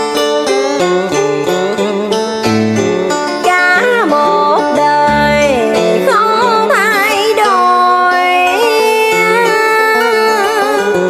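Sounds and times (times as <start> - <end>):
instrumental backing: 0.0 - 11.0
person singing: 3.4 - 11.0.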